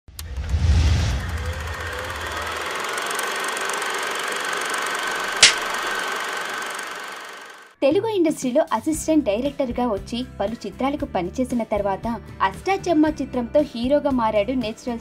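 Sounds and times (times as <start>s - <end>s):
deep rumble: 0.2s - 2.9s
steady high tone: 0.9s - 6.0s
sharp click: 5.4s - 5.8s.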